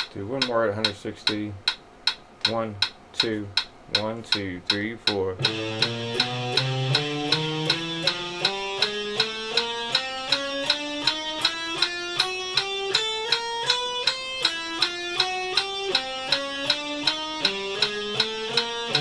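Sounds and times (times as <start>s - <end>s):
electric guitar picked notes: 5.4s - 19.0s.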